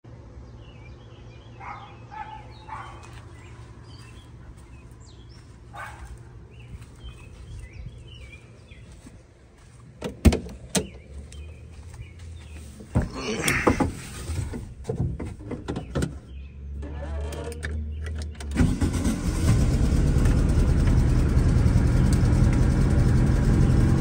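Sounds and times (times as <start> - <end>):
distant dog barking: 1.5 - 3.2, 5.7 - 6.3
low rumble: 19.6 - 24.0.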